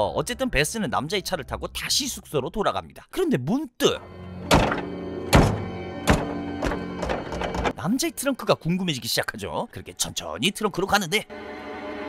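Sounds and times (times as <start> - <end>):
sustained low orchestral chord: 11.3 - 12.0.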